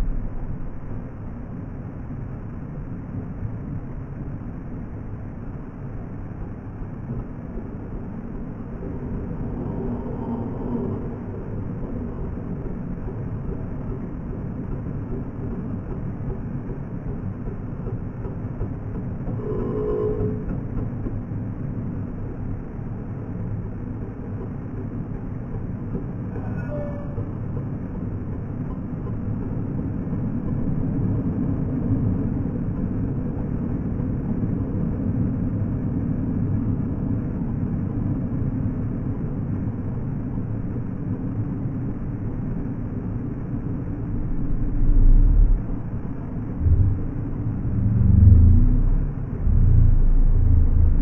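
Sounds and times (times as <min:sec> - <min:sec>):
motorcycle traffic rumble: 0:44.0 - 0:51.0
low buffet: 0:44.1 - 0:51.0.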